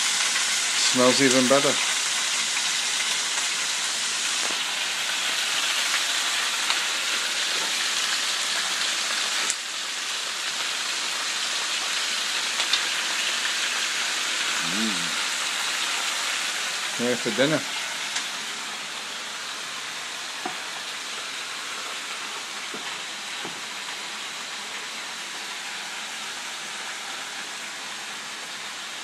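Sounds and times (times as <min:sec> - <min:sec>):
meat sizzling in hot oil: 0:00.0 - 0:29.0.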